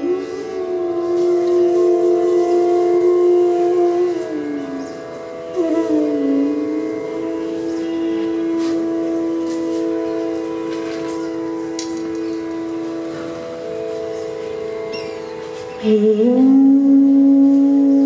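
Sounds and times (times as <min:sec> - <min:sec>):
bamboo flute playing: 0:00.0 - 0:18.0
drone of held notes: 0:00.0 - 0:18.0.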